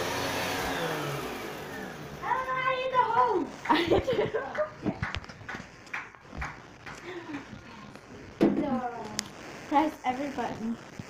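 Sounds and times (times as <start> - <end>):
vacuum cleaner motor whining: 0.0 - 3.6.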